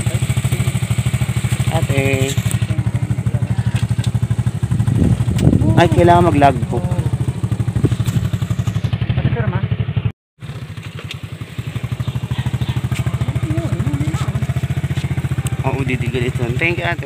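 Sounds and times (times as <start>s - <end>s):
motorcycle engine running: 0.0s - 17.0s
faint voices: 11.8s - 16.4s.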